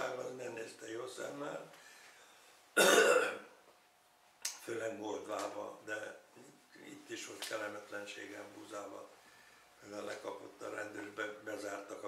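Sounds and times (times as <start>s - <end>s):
man speaking: 0.0s - 1.8s, 4.5s - 9.2s, 9.8s - 12.0s
man clearing throat: 2.8s - 3.5s.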